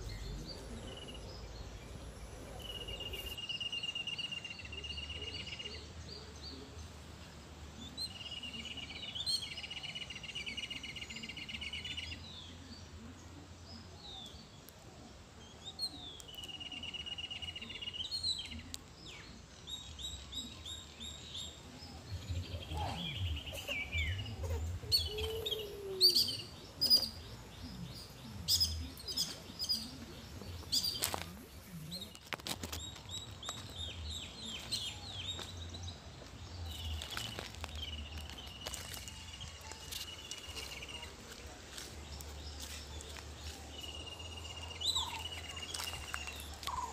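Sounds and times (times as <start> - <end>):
birds chirping: 0.0 - 46.9.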